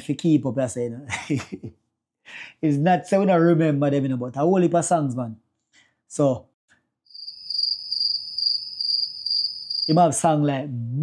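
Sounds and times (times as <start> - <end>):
crickets chirping: 7.1 - 10.0
person talking: 9.9 - 11.0.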